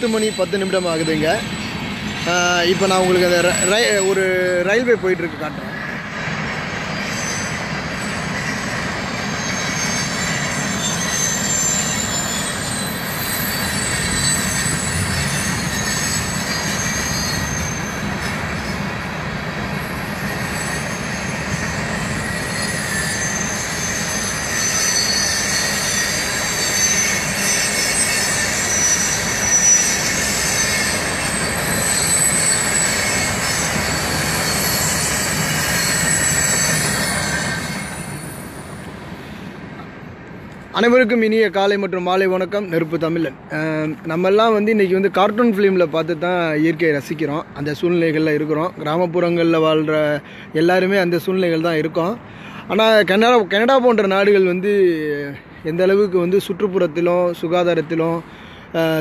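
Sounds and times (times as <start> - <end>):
train rolling rumble: 0.0 - 59.0
train wheel squeal: 0.0 - 59.0.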